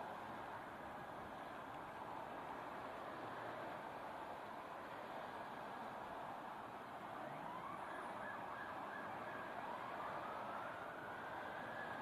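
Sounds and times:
wind: 0.0 - 12.0
police sirens wailing: 7.2 - 12.0.

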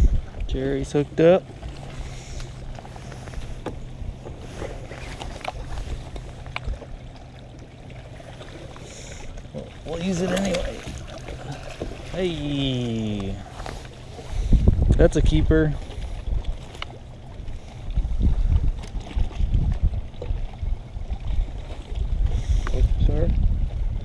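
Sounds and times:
low motor hum: 0.0 - 24.0.

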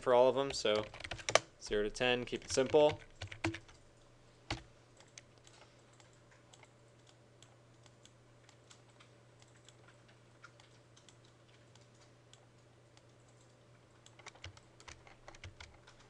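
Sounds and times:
steady low hum: 0.0 - 16.0
keyboard typing: 0.5 - 12.4, 13.0 - 16.0.

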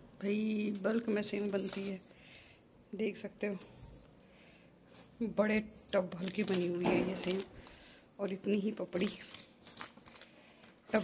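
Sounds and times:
newspaper crinkling: 0.6 - 2.0, 6.0 - 7.9, 8.5 - 11.0.

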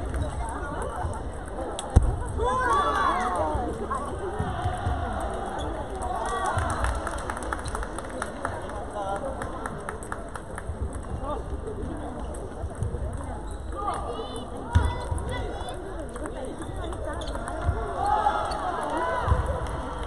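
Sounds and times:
ping pong balls clicking off paddles: 16.0 - 17.7.

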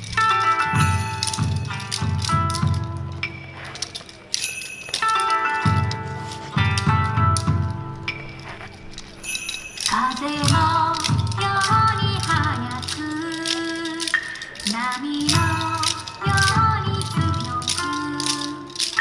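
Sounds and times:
wooden clappers clacking: 0.0 - 19.0.

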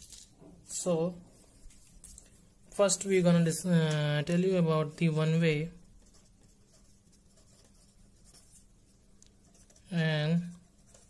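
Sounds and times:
pen scratching on paper: 5.1 - 11.0.

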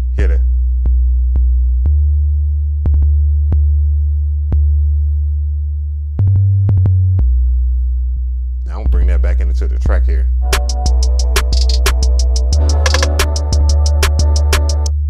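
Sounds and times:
deep synthesized bass booms: 0.0 - 15.0.

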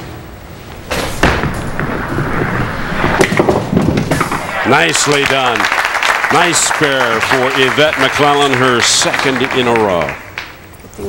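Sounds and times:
bowling ball rolling down lane: 0.6 - 10.7
bowling pins clattering: 0.7 - 6.5.

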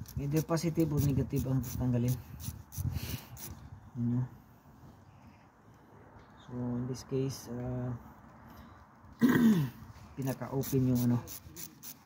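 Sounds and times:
wrench clicking and rubbing: 0.0 - 3.6, 10.3 - 12.0.

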